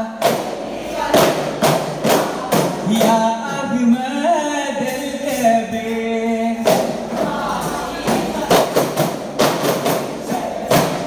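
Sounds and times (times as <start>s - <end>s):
frame drums beating in unison: 0.0s - 5.7s, 6.5s - 11.0s
men singing: 0.0s - 9.0s, 9.9s - 11.0s.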